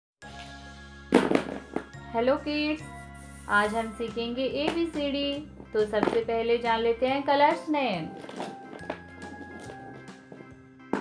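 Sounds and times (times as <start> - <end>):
background music: 0.2 - 11.0
crackling firework sound effect: 1.1 - 2.0.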